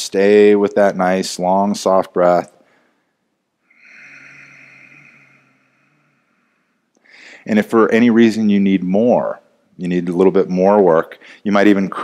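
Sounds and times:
long breathy exhale: 3.7 - 7.5.

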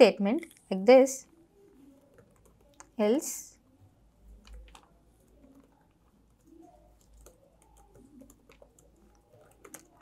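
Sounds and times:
typing on laptop keyboard: 1.3 - 10.0.

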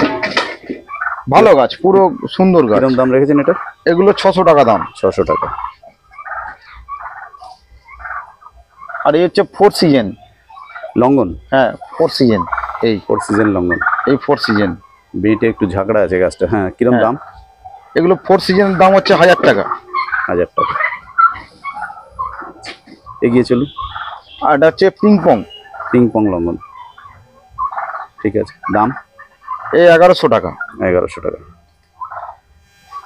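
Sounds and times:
domestic fowl burbling calls: 0.0 - 33.0.

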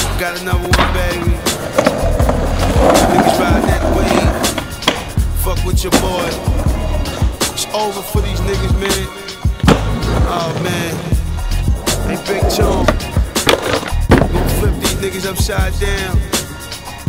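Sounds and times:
hip-hop music with bass beat: 0.0 - 17.0
skateboard wheels rolling on concrete: 0.0 - 17.0
skateboard pops and landings: 4.1 - 5.2, 9.6 - 10.8, 12.8 - 14.9.

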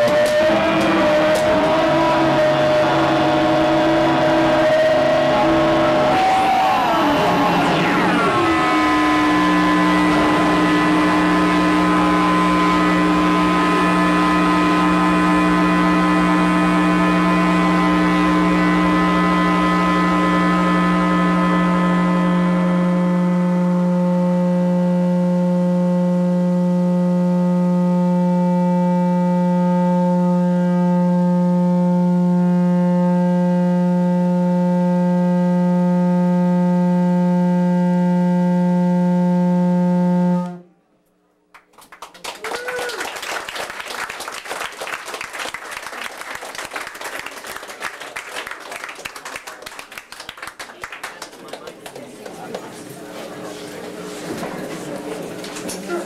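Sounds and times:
synthesizer drone: 0.0 - 41.0.

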